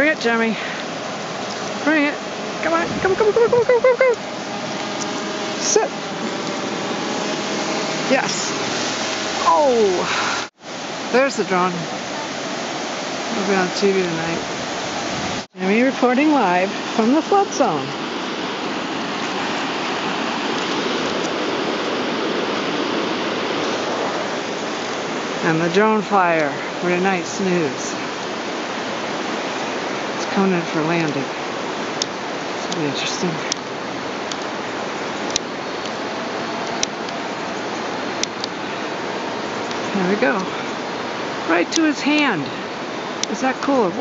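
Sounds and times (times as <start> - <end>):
faint steady hum: 0.0 - 15.0
river water rushing: 0.0 - 44.0.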